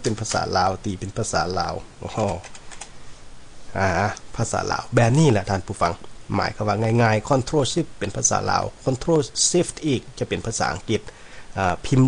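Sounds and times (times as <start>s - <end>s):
man speaking: 0.0s - 2.5s, 3.7s - 12.0s
keyboard key presses: 2.1s - 2.9s.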